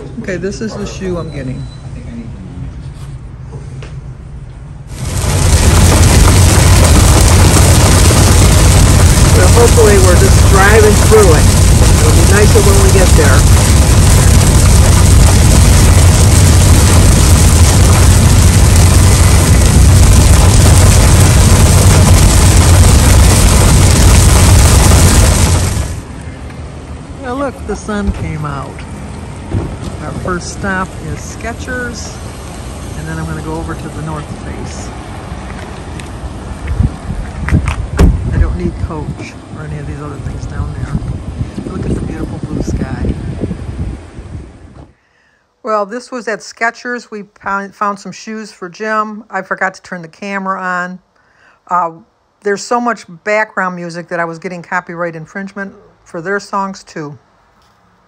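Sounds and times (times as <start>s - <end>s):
wind buffeting microphone: 4.9s - 26.1s, 34.5s - 45.0s
heavy rain on car: 4.9s - 26.2s
tyre noise on wet road: 4.9s - 26.5s, 28.2s - 44.0s.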